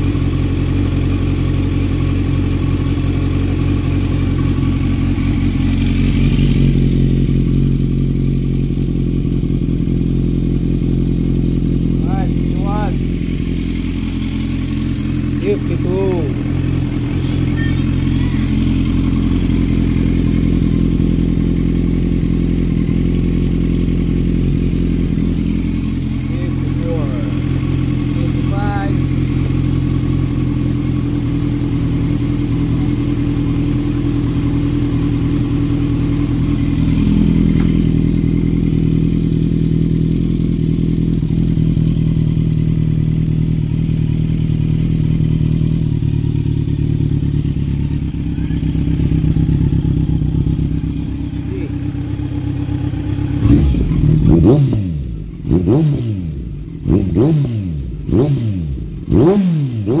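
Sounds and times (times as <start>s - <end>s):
motorcycle engine idling: 0.0s - 60.0s
motorcycle engine revving: 0.0s - 60.0s.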